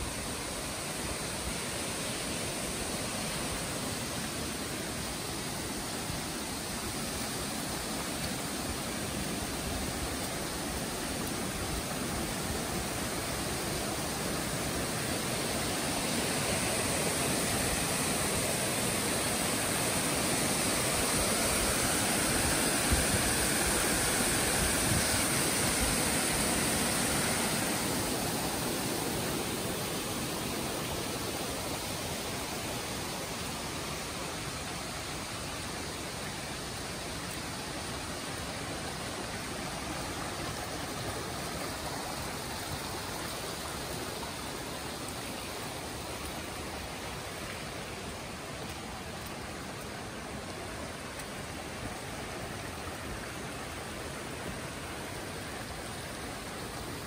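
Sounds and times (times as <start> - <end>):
creek water rushing over rocks: 0.0 - 57.0.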